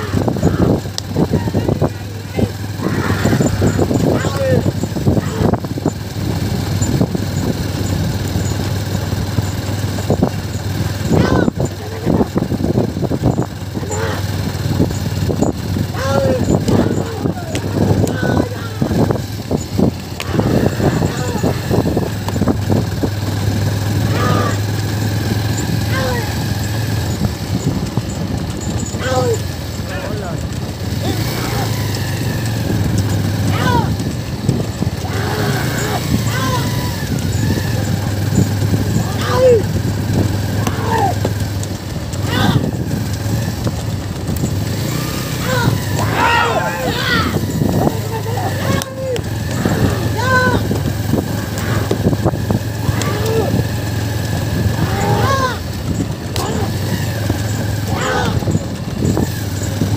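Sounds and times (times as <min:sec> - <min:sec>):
short shouts: 0:00.0 - 0:05.6, 0:11.0 - 0:12.2, 0:13.7 - 0:14.5, 0:15.8 - 0:19.3, 0:20.0 - 0:22.5, 0:24.0 - 0:27.0, 0:28.8 - 0:32.6, 0:33.4 - 0:39.8, 0:40.4 - 0:41.5, 0:42.2 - 0:42.8, 0:44.8 - 0:58.6
low engine hum: 0:00.0 - 0:59.9
wooden cart rumbling and rattling: 0:00.0 - 0:59.9.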